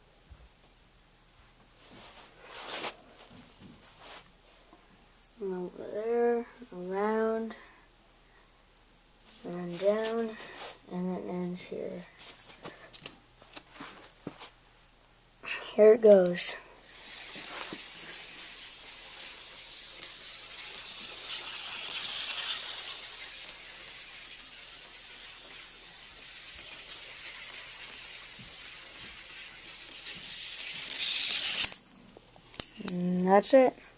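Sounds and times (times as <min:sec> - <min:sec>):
marbles rolling on plastic track: 0:16.8 - 0:31.8.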